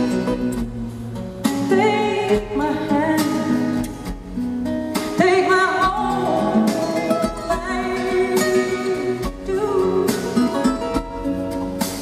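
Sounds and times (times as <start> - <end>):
acoustic guitar: 0.0 - 12.0
woman singing a ballad: 1.5 - 4.1, 5.0 - 10.9.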